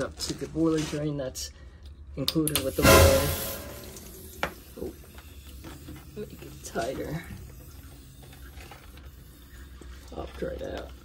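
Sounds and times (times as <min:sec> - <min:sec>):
liquid hissing and trickling: 0:02.9 - 0:11.0.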